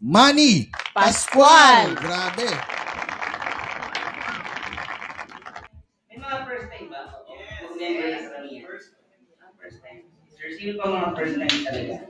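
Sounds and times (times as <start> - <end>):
hands clapping: 0.2 - 5.7, 11.5 - 11.8.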